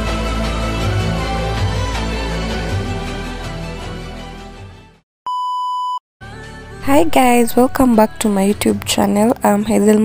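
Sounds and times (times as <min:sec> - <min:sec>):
electronic beep: 0:05.3 - 0:06.0.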